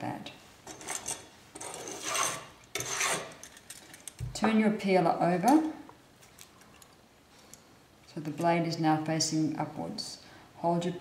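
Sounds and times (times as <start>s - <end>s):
metal utensils scraping wooden board: 0.6s - 3.6s.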